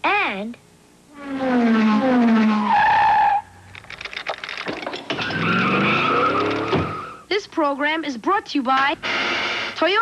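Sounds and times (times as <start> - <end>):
tire squeal: 1.1 - 3.5, 5.2 - 7.2
whirring engine-like tone: 1.1 - 3.6, 5.2 - 7.3.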